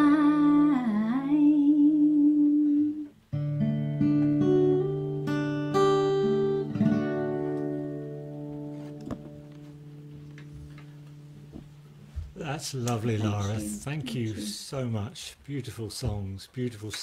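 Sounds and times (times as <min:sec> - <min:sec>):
acoustic guitar notes: 0:00.0 - 0:14.9.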